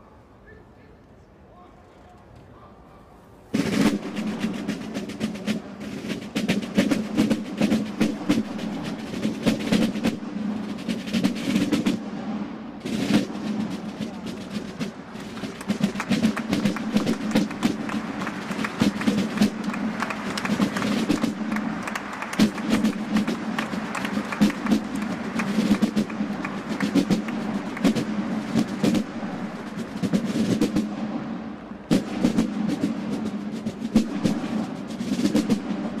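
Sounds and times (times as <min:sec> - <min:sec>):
field drums playing rapid strokes: 0:03.5 - 0:36.0.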